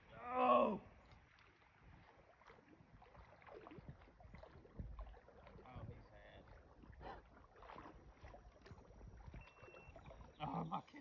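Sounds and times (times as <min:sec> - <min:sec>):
faint water movement: 0:00.0 - 0:11.0.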